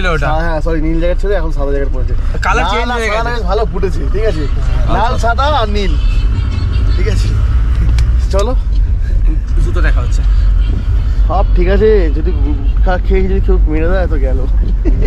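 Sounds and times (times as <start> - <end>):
engine and road rumble in cabin: 0.0 - 15.0
voices talking: 0.0 - 15.0.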